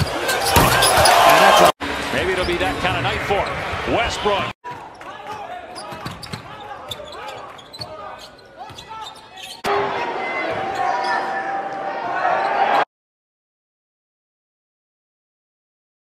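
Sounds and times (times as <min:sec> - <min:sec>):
crowd noise: 0:00.0 - 0:12.9
shoe squeaks: 0:05.8 - 0:09.6.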